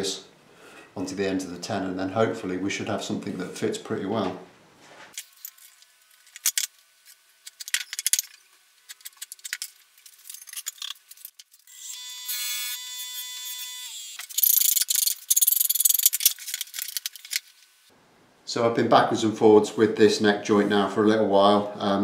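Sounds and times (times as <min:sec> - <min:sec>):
steady tool whine: 0:11.7 - 0:14.9.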